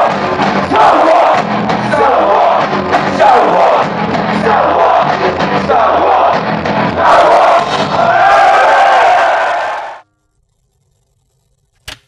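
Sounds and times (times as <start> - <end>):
punk rock band playing: 0.0 - 8.6
crowd shouting: 0.0 - 10.0.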